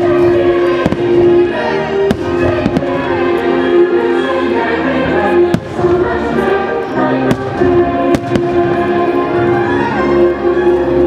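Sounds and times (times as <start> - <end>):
show music: 0.0 - 11.0
fireworks bangs: 0.8 - 1.3, 2.1 - 3.3, 5.5 - 6.1, 7.3 - 9.0.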